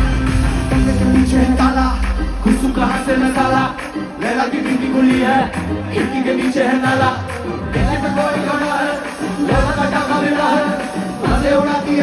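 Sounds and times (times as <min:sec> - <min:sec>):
live band music with singing: 0:00.0 - 0:12.0.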